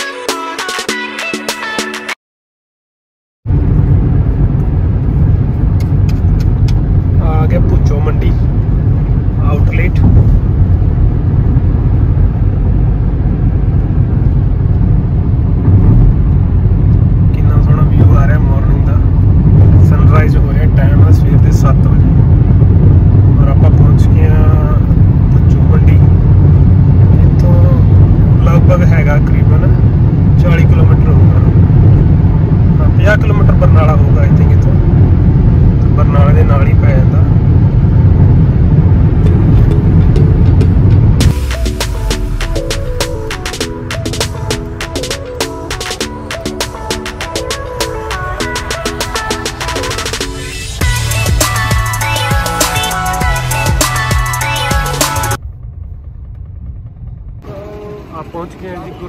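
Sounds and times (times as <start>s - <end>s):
road and engine rumble in car: 3.5s - 59.0s.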